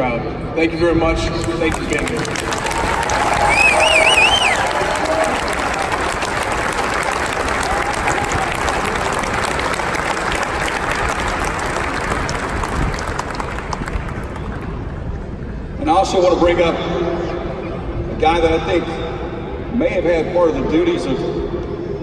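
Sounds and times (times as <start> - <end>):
crowd applauding: 1.4 - 15.3
high warbling whistle: 3.5 - 4.7.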